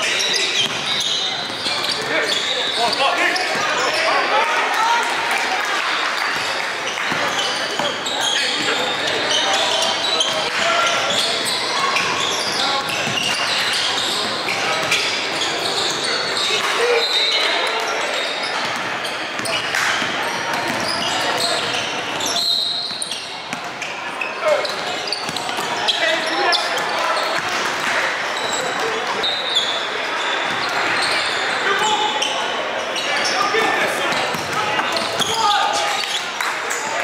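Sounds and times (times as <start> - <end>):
players and spectators voices: 0.0 - 37.0.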